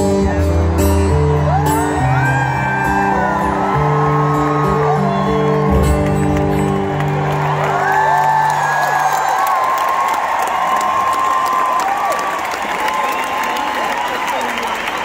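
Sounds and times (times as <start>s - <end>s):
crowd applauding and cheering: 0.0s - 15.0s
high whoops and screams: 1.4s - 14.4s.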